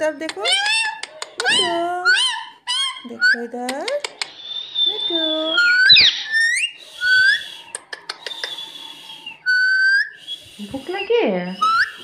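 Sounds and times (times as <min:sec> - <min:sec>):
sharp bird clicks: 0:00.2 - 0:01.6, 0:03.7 - 0:04.9, 0:05.6 - 0:08.9
parakeet whistling: 0:00.4 - 0:03.4, 0:04.2 - 0:12.0.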